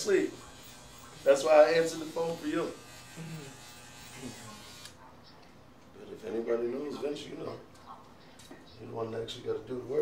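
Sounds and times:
electric hair clippers buzzing: 0.0s - 5.0s.

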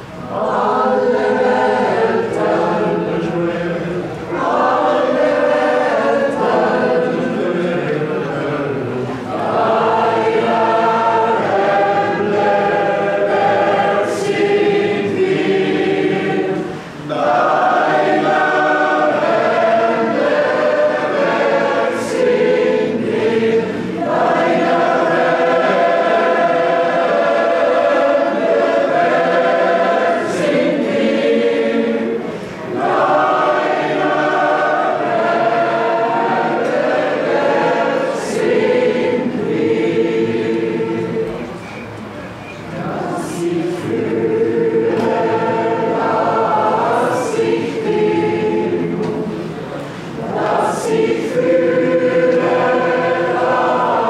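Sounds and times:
mixed choir singing: 0.0s - 54.0s.

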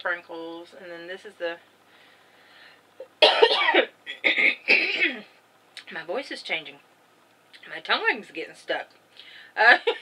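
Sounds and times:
woman coughing: 3.2s - 5.3s.

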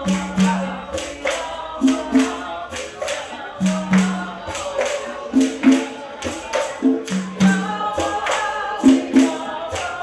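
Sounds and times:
hand claps: 0.0s - 10.0s
shaken percussion: 0.0s - 10.0s
voices singing together: 0.0s - 10.0s.

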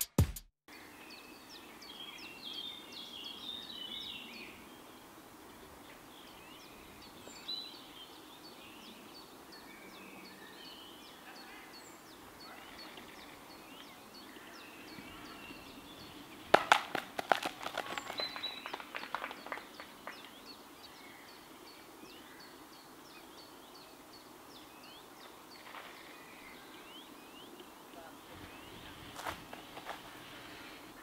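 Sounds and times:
small birds chirping: 0.7s - 31.0s.

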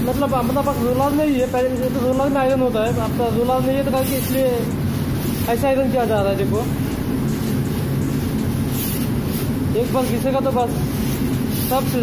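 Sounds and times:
low mechanical drone of machinery: 0.0s - 12.0s.

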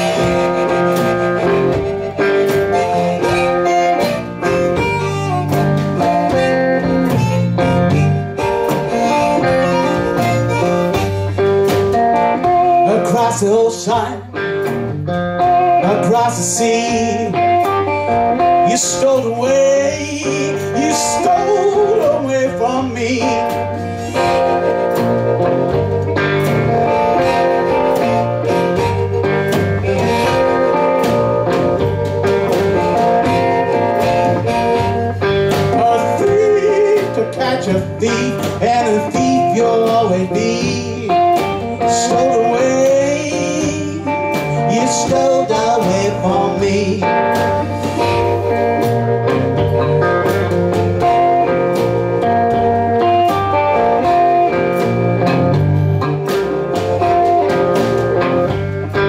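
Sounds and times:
bending lead guitar line: 0.0s - 59.0s
blues guitar riff: 0.0s - 59.0s
steady drum beat: 0.0s - 59.0s.

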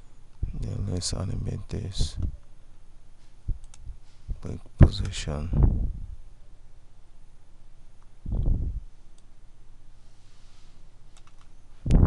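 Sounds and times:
computer mouse clicks: 11.1s - 11.5s.

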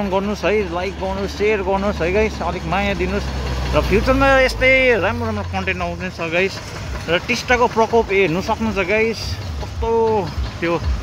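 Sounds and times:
man talking: 0.0s - 11.0s
vehicles passing on road: 0.0s - 11.0s.

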